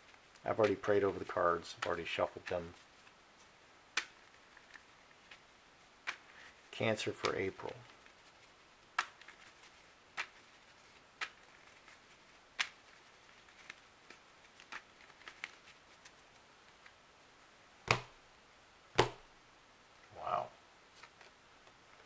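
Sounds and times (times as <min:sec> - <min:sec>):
playing cards snapping: 0:03.9 - 0:05.4, 0:06.0 - 0:06.3, 0:07.1 - 0:07.5, 0:08.9 - 0:09.5, 0:10.1 - 0:10.5, 0:11.2 - 0:11.9, 0:12.6 - 0:12.9, 0:17.9 - 0:18.2, 0:19.0 - 0:19.2
cards slapped on table: 0:17.9 - 0:18.2, 0:19.0 - 0:19.2.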